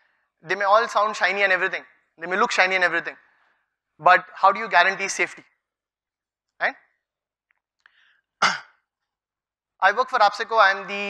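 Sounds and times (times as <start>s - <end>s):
breath into microphone: 3.2s - 3.8s, 7.8s - 8.4s.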